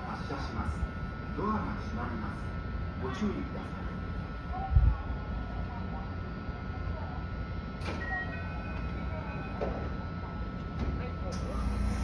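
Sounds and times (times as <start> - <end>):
train equipment humming: 0.0 - 12.0.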